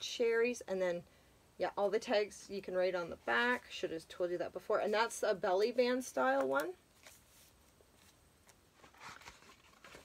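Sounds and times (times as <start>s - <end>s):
paper pages turning: 6.5s - 10.0s.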